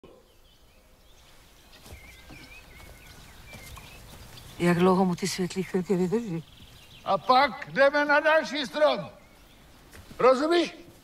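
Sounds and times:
quiet outdoor ambience: 0.0 - 11.0
small bird chirping: 0.1 - 10.4.

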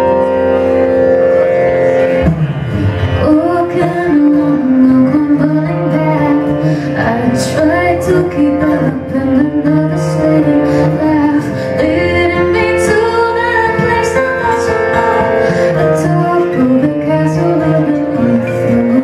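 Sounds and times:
acoustic guitar playing: 0.0 - 19.0
woman singing: 3.1 - 19.0.

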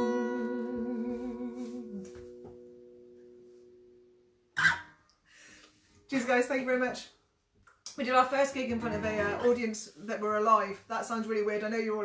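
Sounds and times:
person singing with vibrato: 0.0 - 2.4
acoustic guitar chord ringing: 0.0 - 5.0.

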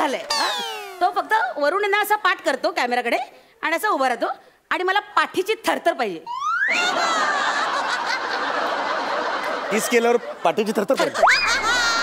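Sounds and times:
studio audience laughing: 6.7 - 12.0.

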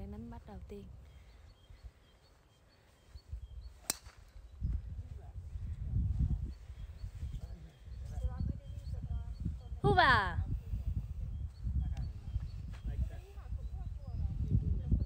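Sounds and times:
golf club hitting ball: 3.8 - 4.2.

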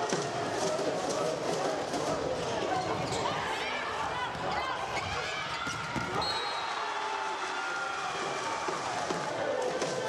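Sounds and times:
shouting and cheering crowd: 0.0 - 10.0.

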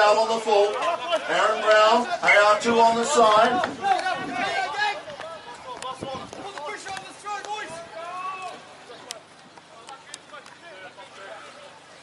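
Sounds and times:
voices talking in background: 0.0 - 12.0.

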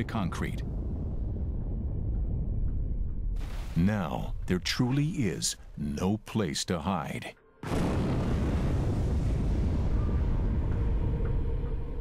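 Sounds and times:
rumble of large explosion: 0.0 - 4.6, 7.6 - 12.0.

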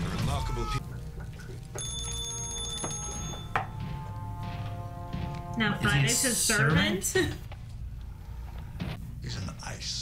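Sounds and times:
high metallic ringing: 1.8 - 4.6.

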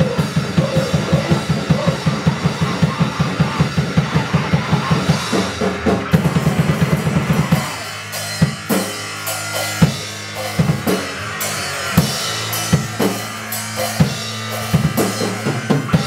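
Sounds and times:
low drone: 0.0 - 16.0
punk band playing live: 0.0 - 16.0.

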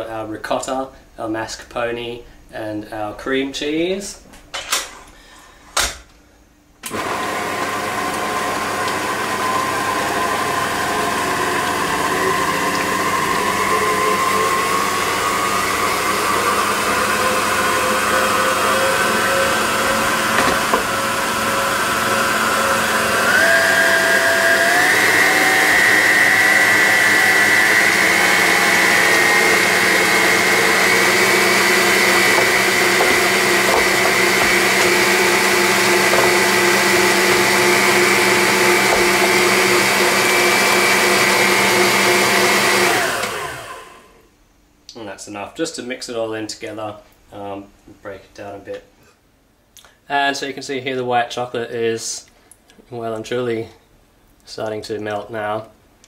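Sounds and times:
electric mixer motor running: 6.9 - 44.1.

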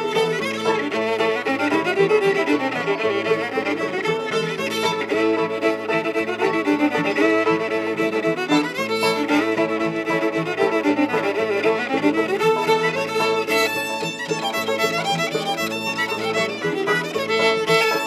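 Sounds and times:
fiddle playing dance tune: 0.0 - 18.0.

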